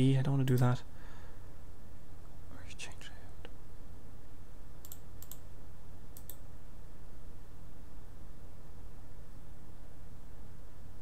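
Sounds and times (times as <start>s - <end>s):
faint rustle or breath: 0.9s - 1.6s
computer mouse clicks: 4.8s - 5.5s, 6.1s - 6.4s.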